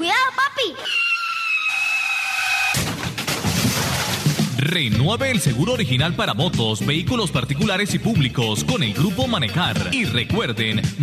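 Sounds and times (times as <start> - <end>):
car crash impact: 2.7 - 4.6.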